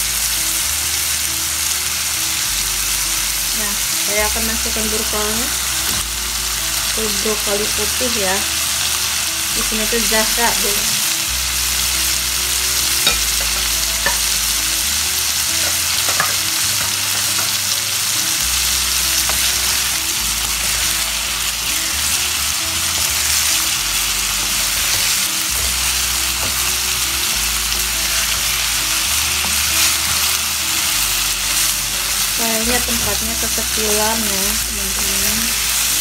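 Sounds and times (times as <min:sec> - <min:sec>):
food sizzling in a frying pan: 0:00.0 - 0:36.0.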